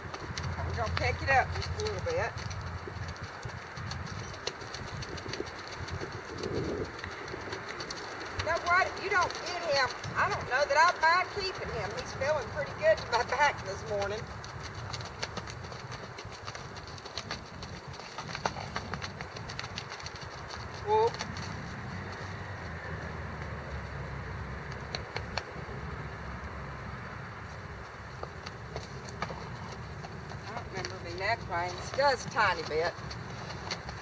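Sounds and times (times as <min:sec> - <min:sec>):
horse hoofbeats on frozen dirt: 0:00.0 - 0:34.0
steady low rumble: 0:00.0 - 0:34.0.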